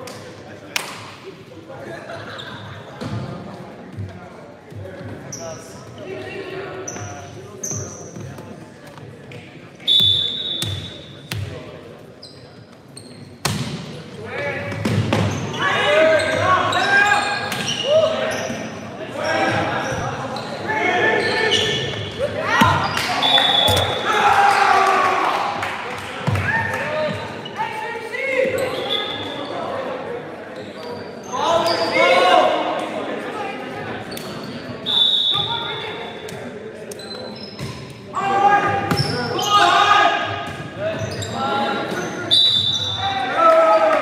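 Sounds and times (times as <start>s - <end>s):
sneakers squeaking on hardwood: 6.8s - 8.5s, 12.2s - 13.7s, 37.0s - 37.9s, 38.9s - 39.6s, 40.5s - 43.0s.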